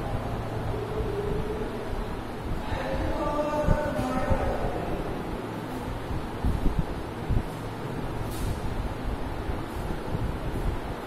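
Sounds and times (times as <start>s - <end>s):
low rumbling: 0.0s - 11.0s.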